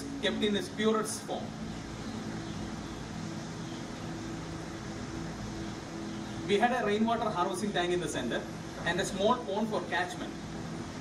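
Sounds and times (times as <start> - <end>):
faint low drone: 0.0 - 11.0
room hum and hiss: 0.0 - 11.0.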